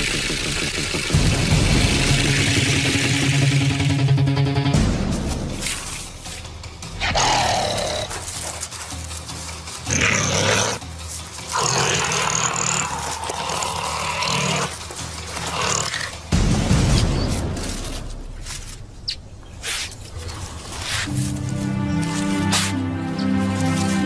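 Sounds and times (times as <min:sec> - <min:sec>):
low music bed: 0:01.0 - 0:24.0
harsh animal growls: 0:11.5 - 0:16.2.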